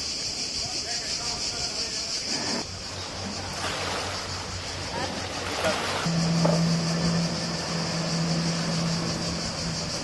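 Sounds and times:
churning water: 0:01.8 - 0:10.0
boat engine droning: 0:02.3 - 0:10.0.

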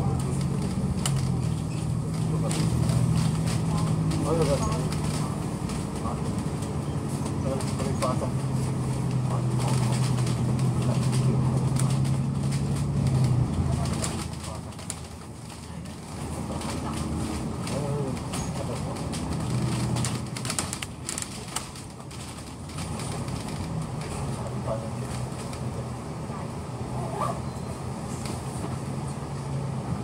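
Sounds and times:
bus diesel engine hum: 0:00.0 - 0:30.0.

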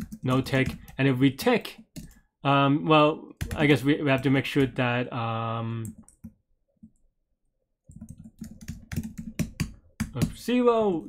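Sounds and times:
keyboard typing: 0:00.0 - 0:02.2, 0:03.4 - 0:04.8, 0:05.8 - 0:07.0, 0:07.9 - 0:10.5.

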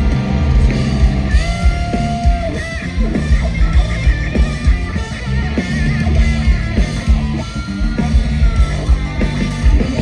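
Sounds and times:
bass and drums: 0:00.0 - 0:10.0
distorted electric guitars: 0:00.0 - 0:10.0.

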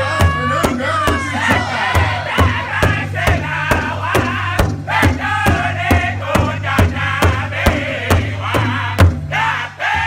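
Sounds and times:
large drum beating: 0:00.0 - 0:10.0
men singing in high voices: 0:00.0 - 0:10.0.

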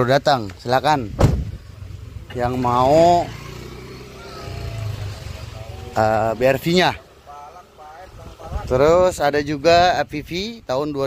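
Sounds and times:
faint voices: 0:02.2 - 0:09.3.

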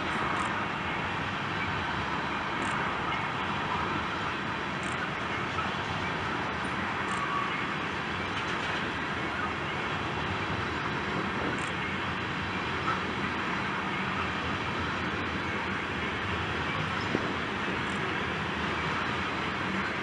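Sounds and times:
train wheels rumbling on rail: 0:00.0 - 0:20.0.

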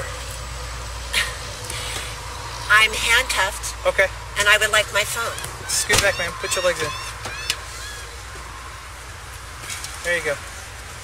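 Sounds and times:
idling vehicle rumble: 0:00.0 - 0:11.0
street noise: 0:00.0 - 0:11.0.

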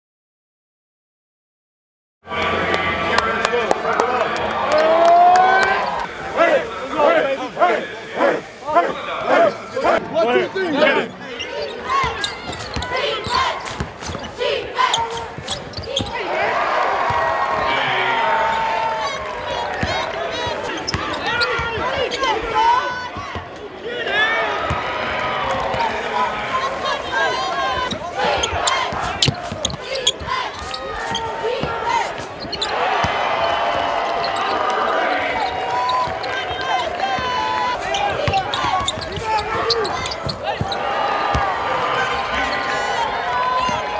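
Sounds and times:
crowd noise: 0:02.2 - 0:43.9
players shouting together: 0:04.6 - 0:43.9
sneakers squeaking: 0:11.1 - 0:16.2, 0:19.8 - 0:23.6, 0:27.0 - 0:43.9.

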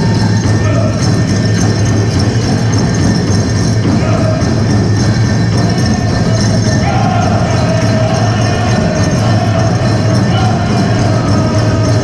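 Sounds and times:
ankle bells jingling: 0:00.0 - 0:12.0
powwow drum music: 0:00.0 - 0:12.0.

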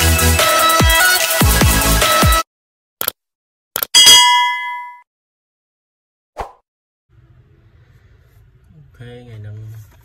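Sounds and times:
bright metallic ding: 0:04.0 - 0:05.0.

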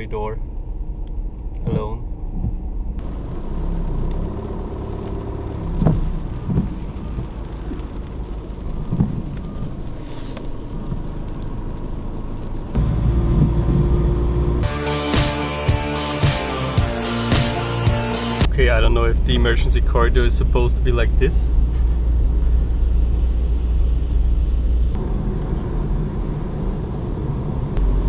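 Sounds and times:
car cabin road noise: 0:00.0 - 0:28.0
low engine rumble: 0:00.0 - 0:28.0
background music with steady beat: 0:14.6 - 0:18.5.

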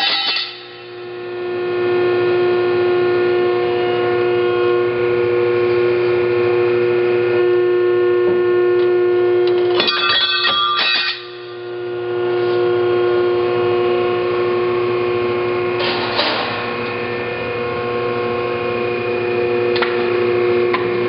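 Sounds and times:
blade cutting metal screeching: 0:00.0 - 0:00.8, 0:09.7 - 0:11.6
hydraulic pump hum: 0:00.0 - 0:21.0.

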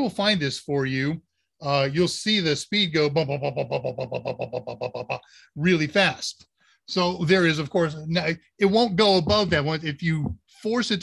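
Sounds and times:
man making stuttering sound: 0:03.1 - 0:05.3.

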